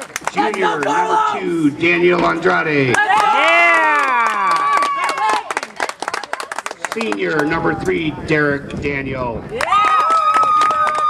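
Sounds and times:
people clapping: 0.0s - 1.3s, 2.8s - 8.0s, 9.6s - 11.0s
spectators shouting: 2.9s - 5.5s.

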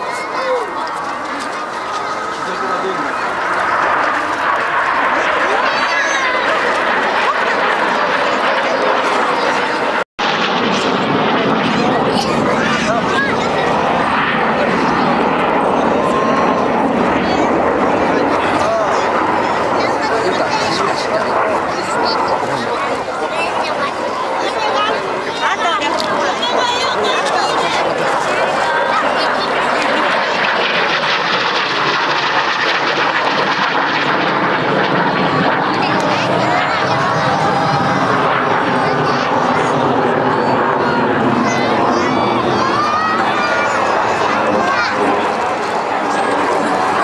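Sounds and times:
faint crowd voices: 0.0s - 47.0s
jet noise rush: 0.0s - 47.0s.

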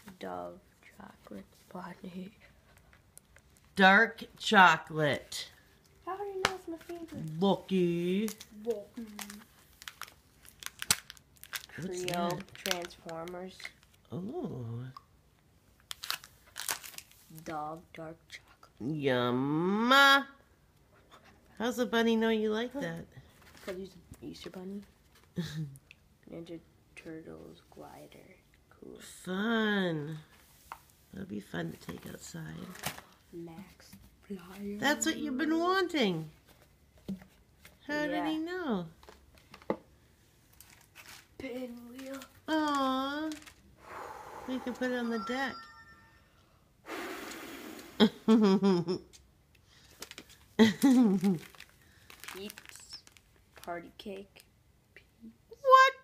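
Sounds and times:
plastic packaging crinkling: 8.1s - 14.0s, 15.8s - 17.4s, 40.5s - 43.7s, 49.8s - 53.8s.

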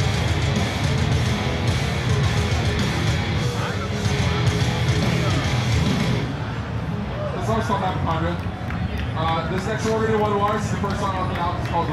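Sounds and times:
hard rock guitars: 0.0s - 6.3s.

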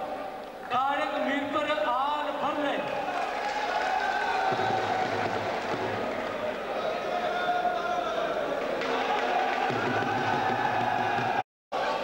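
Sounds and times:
crowd noise: 0.0s - 12.0s
man announcing over loudspeaker: 0.7s - 3.0s.

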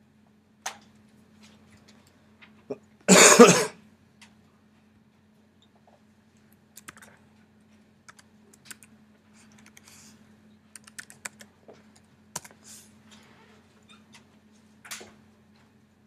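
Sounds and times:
faint steady hum: 0.0s - 16.0s
keyboard typing clicks: 6.7s - 7.2s, 8.1s - 9.9s, 10.7s - 12.6s.

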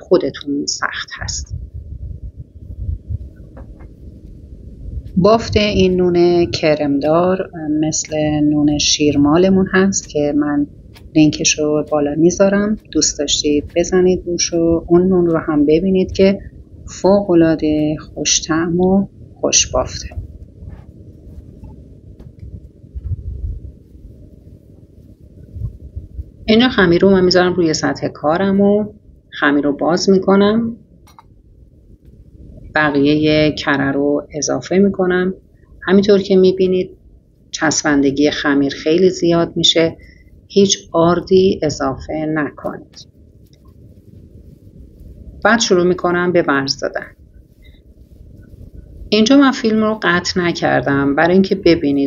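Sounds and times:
faint clicks: 31.0s - 31.4s, 43.4s - 44.1s.

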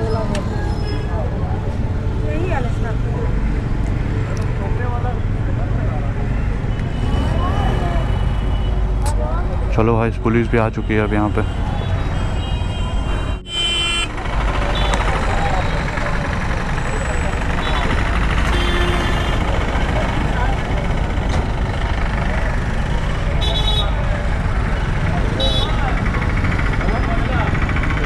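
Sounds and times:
crowd voices: 0.0s - 28.0s
road traffic rumble: 0.0s - 28.0s
vehicle horn toots: 10.2s - 15.8s, 17.1s - 19.7s, 23.4s - 24.1s, 24.7s - 26.0s.

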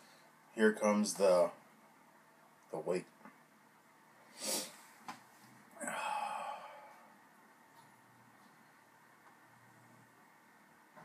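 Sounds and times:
man breathing out through nose: 4.3s - 4.9s
man sighing: 5.8s - 7.0s.

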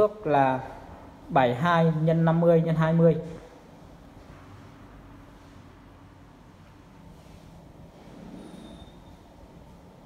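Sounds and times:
faint high-pitched squeal: 8.1s - 9.4s.

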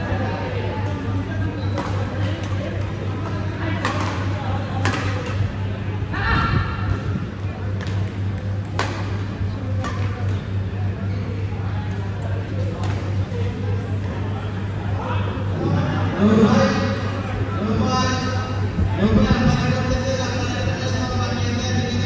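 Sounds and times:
steady low hum: 0.0s - 22.0s
rackets striking shuttlecock: 1.7s - 2.9s, 3.8s - 5.5s, 7.8s - 10.4s.

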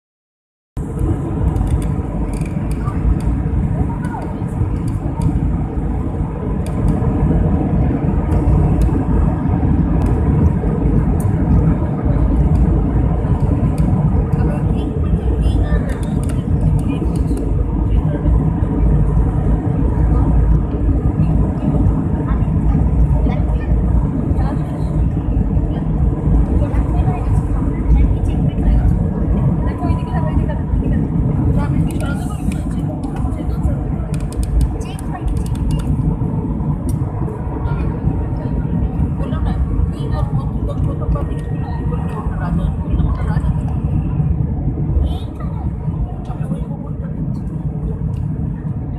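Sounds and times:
jet engines at takeoff thrust: 0.8s - 48.9s
wheels rumbling on runway: 0.8s - 48.9s.

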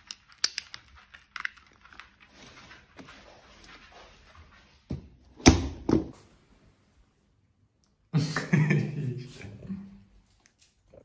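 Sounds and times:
soft rustling: 0.8s - 5.2s.

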